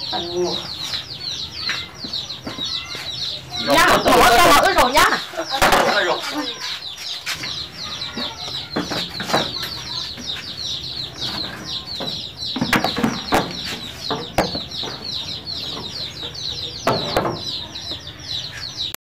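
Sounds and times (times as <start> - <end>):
birds chirping: 0.0 - 19.0
sharp knocks: 12.0 - 15.2, 16.8 - 17.6.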